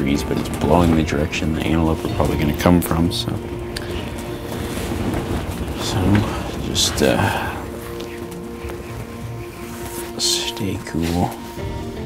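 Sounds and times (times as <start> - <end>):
low microphone wind rumble: 0.0 - 10.0
wind blowing through fabric blind: 0.0 - 12.0.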